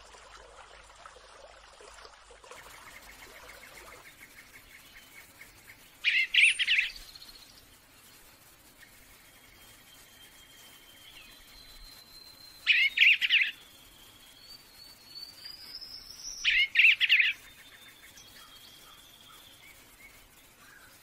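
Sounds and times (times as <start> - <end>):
songbird warbling: 2.6 - 7.6, 12.6 - 13.6, 15.4 - 19.7
faint high whistles: 9.5 - 16.7.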